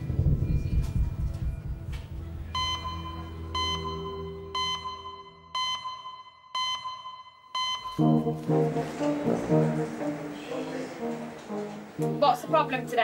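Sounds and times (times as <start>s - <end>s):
short electronic beeps: 2.6s - 8.4s.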